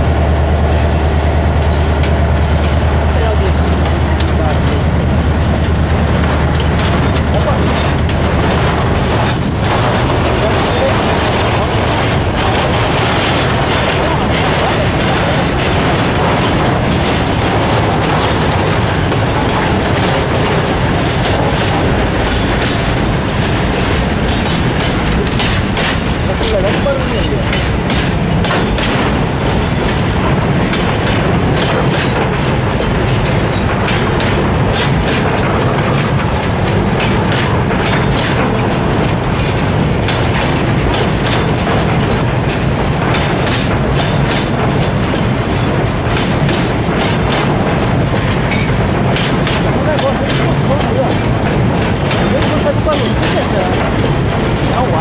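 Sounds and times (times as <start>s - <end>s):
train wheels rumbling on rails: 0.0s - 55.0s
wheels clacking over rail joints: 0.0s - 55.0s.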